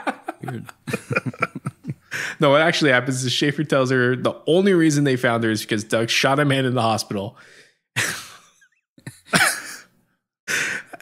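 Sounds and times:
man laughing breathily: 0.0s - 2.4s, 8.0s - 9.9s, 10.5s - 11.0s.

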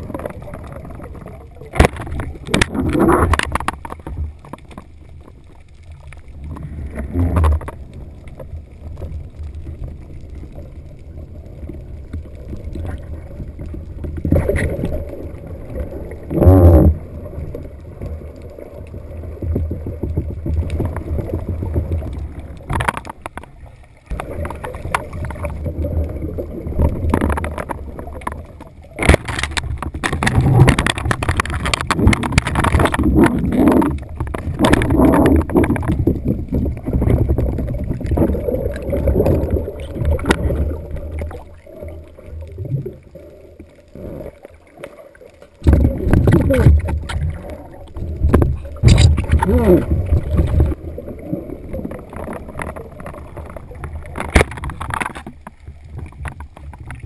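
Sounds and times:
muffled underwater water rush: 0.0s - 57.0s.

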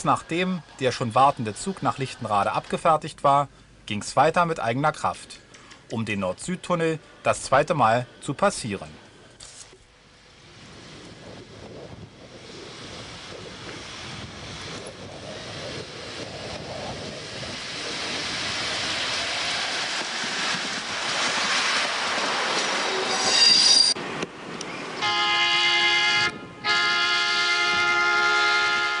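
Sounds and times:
electric train running past: 0.0s - 2.6s, 10.2s - 29.0s
high wheel squeal: 22.9s - 24.0s
train horn tones: 25.0s - 29.0s.

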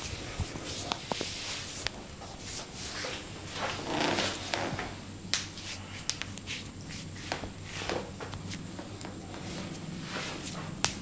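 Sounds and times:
hands rubbing skin and clothing: 0.0s - 4.7s, 5.3s - 11.0s.

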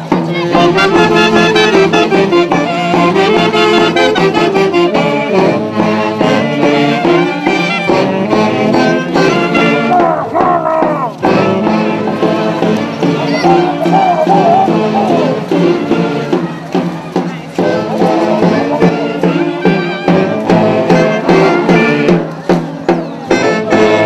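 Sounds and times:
wind ensemble music: 0.0s - 24.0s.

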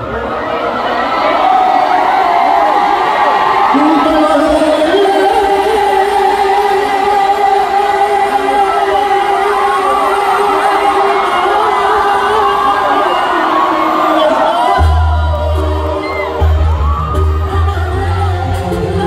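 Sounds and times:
crowd singing and cheering: 0.0s - 19.0s
singer holding long note: 1.9s - 19.0s
band with heavy bass: 3.8s - 19.0s.

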